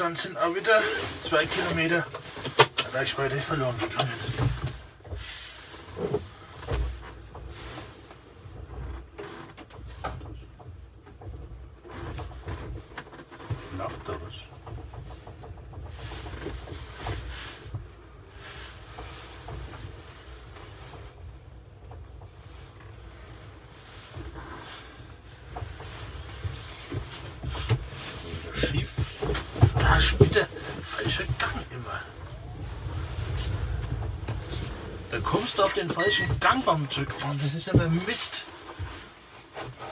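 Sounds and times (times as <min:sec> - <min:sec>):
car drivetrain and tyre rumble: 0:00.0 - 0:39.9.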